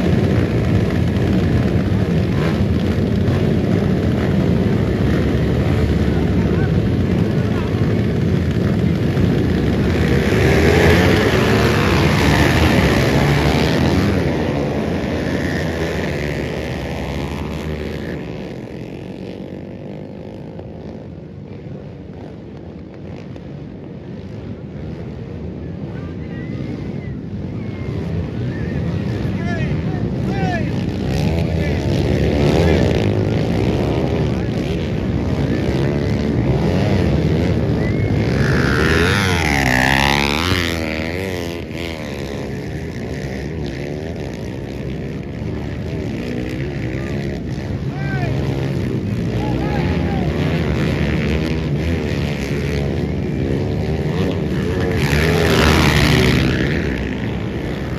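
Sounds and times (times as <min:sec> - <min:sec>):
dirt bike engines revving: 0:00.0 - 0:57.9.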